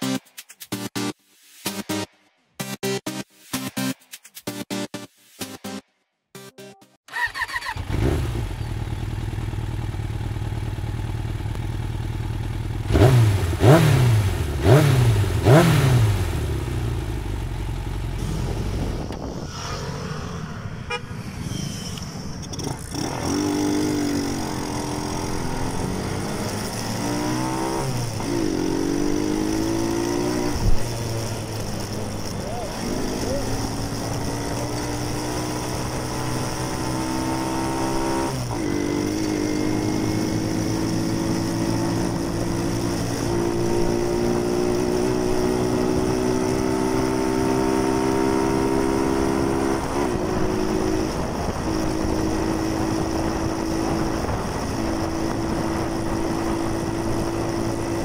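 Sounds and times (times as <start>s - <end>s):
small motorcycle engine revving: 7.1s - 19.9s, 22.4s - 58.0s.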